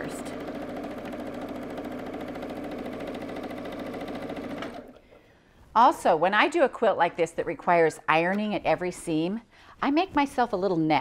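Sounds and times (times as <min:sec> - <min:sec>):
electric sewing machine running: 0:00.0 - 0:05.0.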